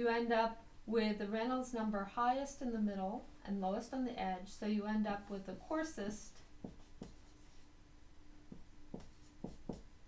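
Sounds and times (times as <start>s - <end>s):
marker tip tapping board: 6.6s - 7.3s, 8.5s - 9.9s
marker scratching on whiteboard: 6.6s - 7.7s, 8.5s - 9.9s.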